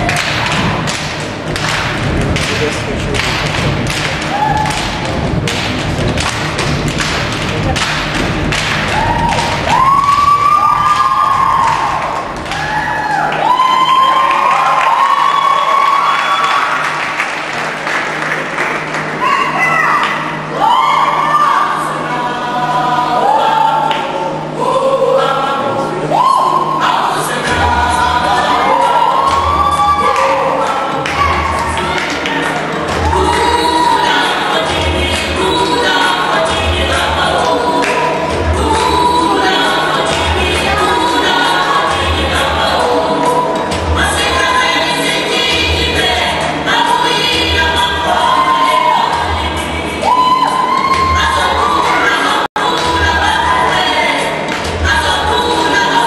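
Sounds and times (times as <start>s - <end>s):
low bass: 0.0s - 14.6s
drum-driven dance music: 0.0s - 16.6s, 27.1s - 56.0s
song over loudspeakers: 0.0s - 56.0s
audience whooping: 1.6s - 6.3s, 7.5s - 21.8s, 26.0s - 34.7s, 48.0s - 52.4s.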